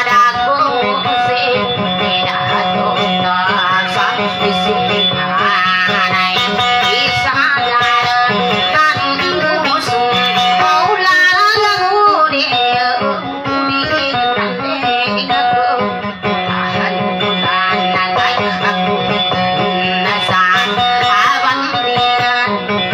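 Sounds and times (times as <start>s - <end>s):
plucked boat lute melody: 0.0s - 22.9s.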